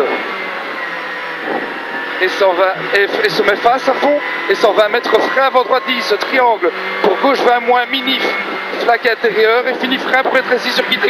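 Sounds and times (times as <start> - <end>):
rally car engine inside cabin: 0.0 - 11.0
road noise: 0.0 - 11.0.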